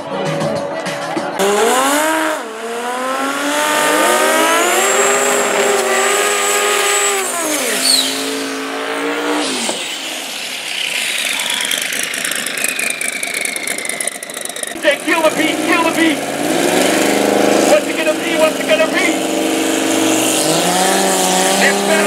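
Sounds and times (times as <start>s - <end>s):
drag racing car engines revving: 0.3s - 22.0s
tyres spinning: 9.6s - 17.3s.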